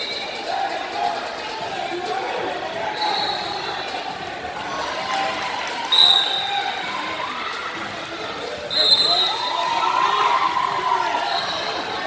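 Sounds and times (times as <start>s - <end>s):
echoing crowd voices: 0.0s - 12.0s.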